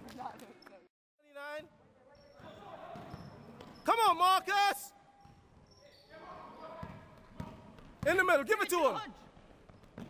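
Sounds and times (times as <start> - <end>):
faint basketball court noise: 1.6 - 10.0.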